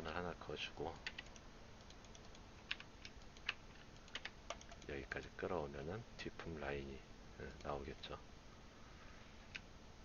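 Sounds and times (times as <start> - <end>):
keyboard and mouse clicks: 0.9 - 5.0.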